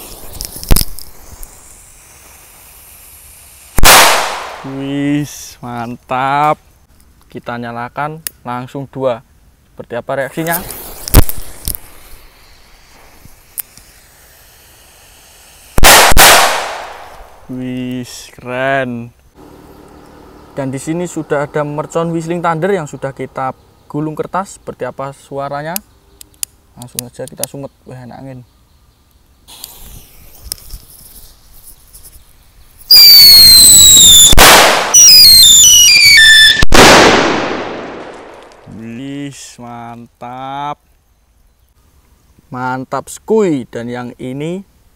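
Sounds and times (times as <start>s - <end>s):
firecracker whistle: 0.0s - 4.7s, 12.2s - 17.2s, 32.8s - 37.0s
hiss: 0.0s - 5.6s, 10.4s - 17.4s, 29.4s - 36.1s
firecrackers banging and popping: 3.8s - 4.7s, 10.6s - 12.1s, 32.9s - 38.7s.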